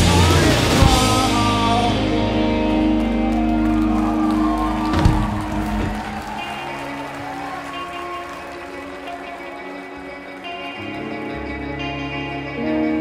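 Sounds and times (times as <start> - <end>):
rock band playing: 0.0 - 13.0
clean electric guitar picking: 9.3 - 13.0.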